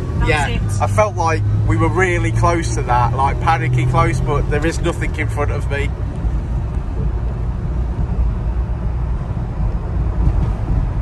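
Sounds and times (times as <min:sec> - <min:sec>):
engine and road rumble in cab: 0:00.0 - 0:11.0.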